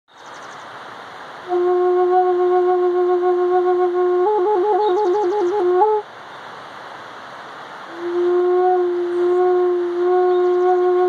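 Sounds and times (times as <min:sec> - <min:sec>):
flute trilling: 0:01.5 - 0:06.0, 0:07.9 - 0:11.0.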